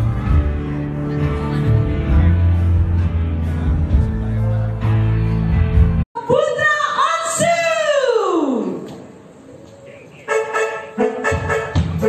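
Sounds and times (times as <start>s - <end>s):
live band music: 0.0s - 6.0s, 10.2s - 12.0s.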